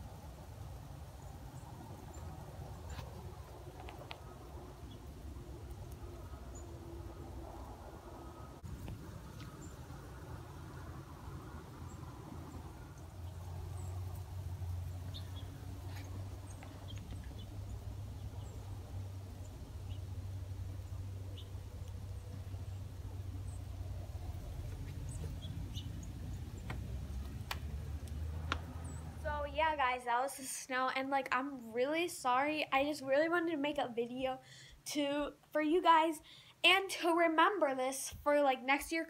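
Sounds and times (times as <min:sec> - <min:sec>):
steady low rumble: 0:00.0 - 0:30.2.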